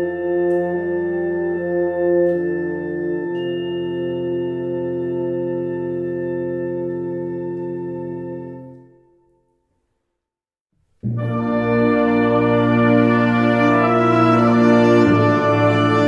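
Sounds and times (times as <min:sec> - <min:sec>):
wind band playing chords: 0:00.0 - 0:09.0, 0:11.0 - 0:16.0.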